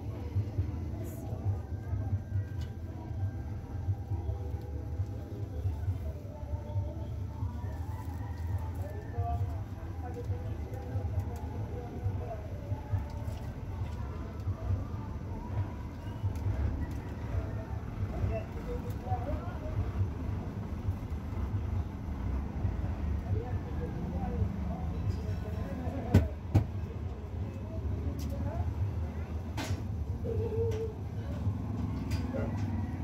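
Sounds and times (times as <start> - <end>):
steady low rumble: 0.0 - 8.0
faint indistinct voices: 0.0 - 33.0.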